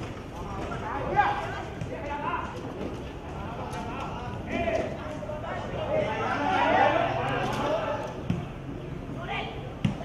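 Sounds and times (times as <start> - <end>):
football being kicked: 9.8 - 10.0.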